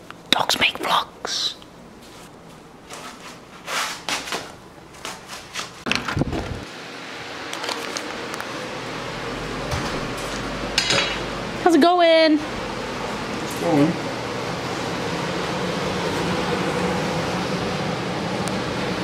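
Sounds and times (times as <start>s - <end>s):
steady background noise: 0.0s - 19.0s.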